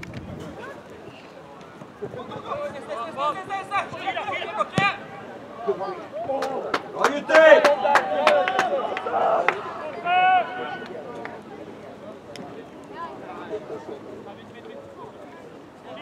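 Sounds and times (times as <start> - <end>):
faint distant voices: 0.0 - 16.0.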